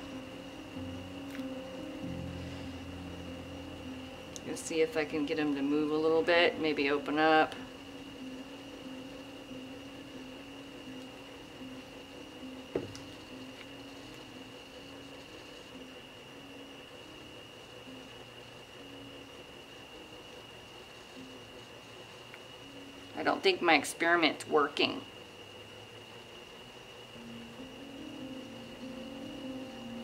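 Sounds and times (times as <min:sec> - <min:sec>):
low electrical hum: 0:00.0 - 0:30.0
steady high whine: 0:00.0 - 0:30.0.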